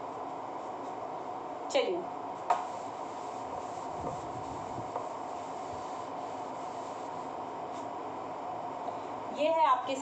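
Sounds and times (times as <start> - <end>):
background hum: 0.0 - 10.0
duster scrubbing whiteboard: 2.4 - 7.9.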